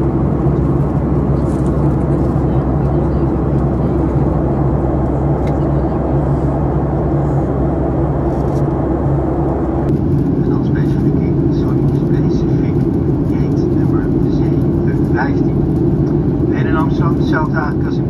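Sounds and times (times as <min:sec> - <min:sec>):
jet cabin hum and rush: 0:00.0 - 0:18.0
faint voice: 0:02.1 - 0:06.5.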